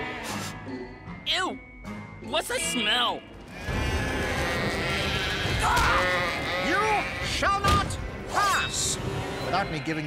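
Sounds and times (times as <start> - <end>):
cartoon sheep bleating: 3.6 - 7.6.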